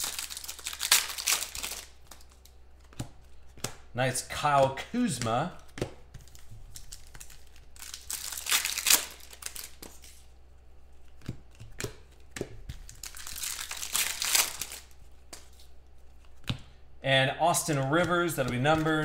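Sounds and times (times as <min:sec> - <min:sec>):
cards rustling and crinkling: 0:00.0 - 0:03.8, 0:04.5 - 0:16.8, 0:17.5 - 0:19.0
trading cards sliding and flicking: 0:08.2 - 0:10.3, 0:17.6 - 0:19.0.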